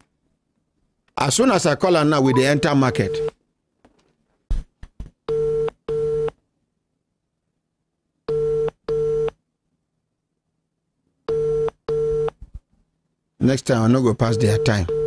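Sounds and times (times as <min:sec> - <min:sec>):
telephone ringback tone: 0:02.3 - 0:03.3, 0:14.3 - 0:15.0.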